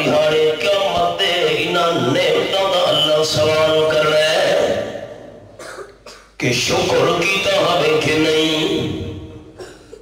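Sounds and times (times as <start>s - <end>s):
amplified man's voice chanting: 0.0s - 5.2s, 6.4s - 9.5s
man coughing: 5.5s - 6.4s, 9.5s - 10.0s.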